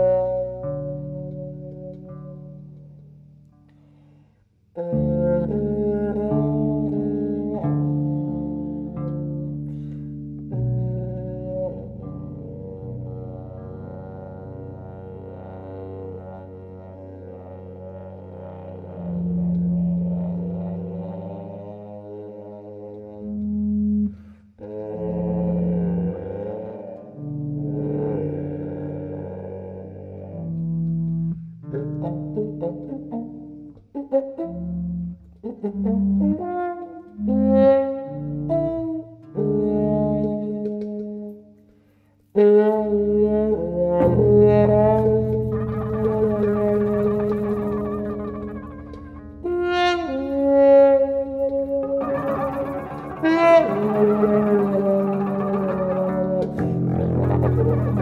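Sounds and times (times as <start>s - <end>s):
muted trombone: 4.8s - 9.9s, 10.5s - 41.4s, 42.3s - 58.0s
walking bass line: 42.8s - 58.0s.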